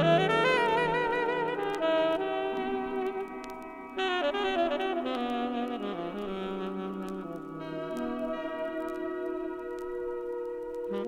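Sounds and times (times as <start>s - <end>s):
held chords: 0.0s - 11.0s
jazz saxophone: 0.0s - 11.0s.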